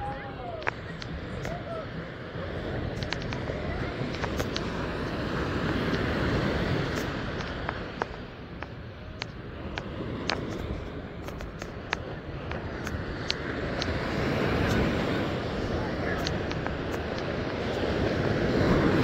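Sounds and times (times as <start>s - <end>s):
ocean surf breaking on beach: 0.0s - 19.0s
sharp clicks: 2.8s - 14.9s, 16.1s - 17.8s.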